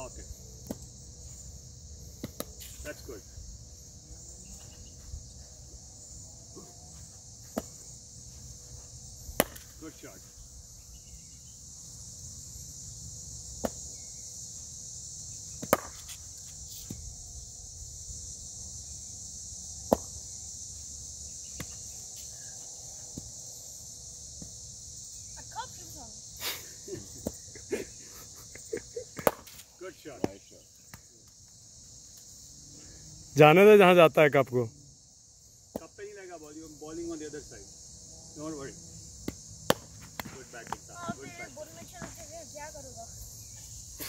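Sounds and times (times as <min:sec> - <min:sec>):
high insect chorus: 0:00.0 - 0:44.0
cricket bat striking ball: 0:09.4 - 0:09.7, 0:15.6 - 0:16.0, 0:29.2 - 0:29.5, 0:39.2 - 0:41.2.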